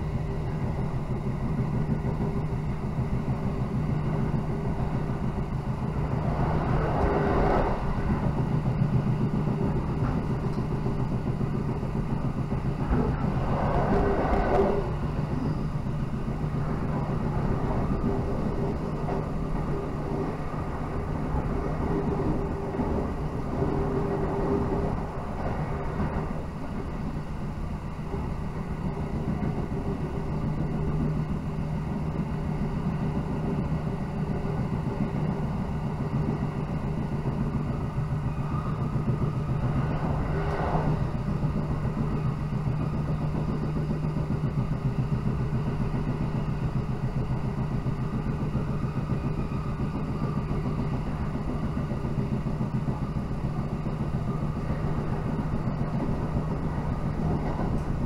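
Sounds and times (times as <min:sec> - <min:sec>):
constant low drone: 0:00.0 - 0:58.0
train wheels rumbling on rail: 0:00.0 - 0:58.0.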